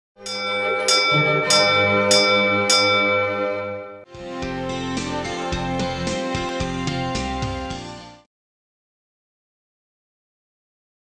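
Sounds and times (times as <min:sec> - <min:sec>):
bell ringing: 0:00.2 - 0:04.1.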